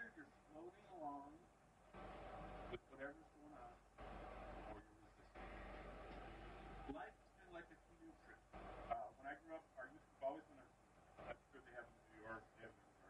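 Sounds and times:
faint indistinct speech: 0:00.0 - 0:01.5, 0:02.7 - 0:13.0
steady hiss: 0:00.0 - 0:13.0.

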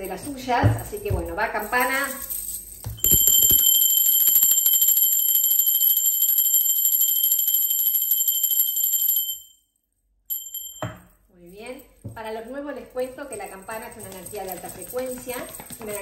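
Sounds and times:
small hand bell ringing: 0:00.7 - 0:09.6, 0:10.3 - 0:11.2.

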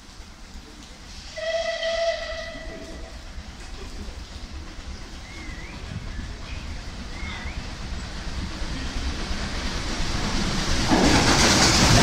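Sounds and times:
steam hiss: 0:00.0 - 0:12.0
steam locomotive whistle: 0:01.3 - 0:03.1.

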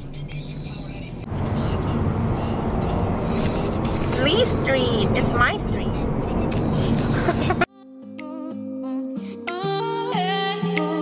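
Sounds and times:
road and engine rumble inside car: 0:00.0 - 0:07.7.

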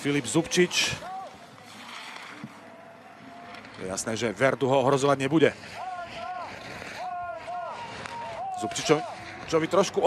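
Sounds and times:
skis carving and scraping snow: 0:00.0 - 0:10.0.

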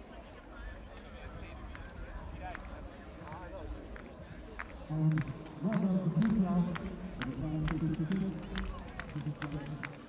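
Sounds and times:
spectators clapping rhythmically: 0:01.6 - 0:10.0.

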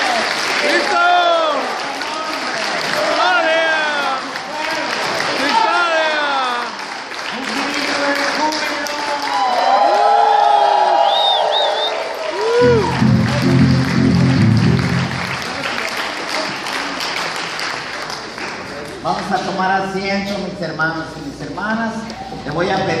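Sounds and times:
congregation applauding: 0:00.0 - 0:19.2
low instrumental chords: 0:12.6 - 0:15.7.

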